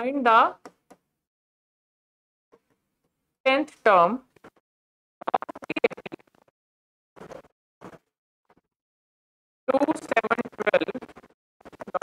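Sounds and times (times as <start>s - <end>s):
stylus scratching on glass: 5.2s - 6.2s, 9.7s - 12.0s.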